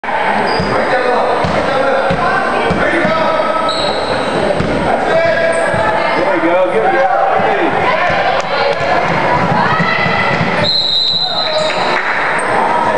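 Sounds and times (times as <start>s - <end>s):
voices chattering: 0.0s - 12.9s.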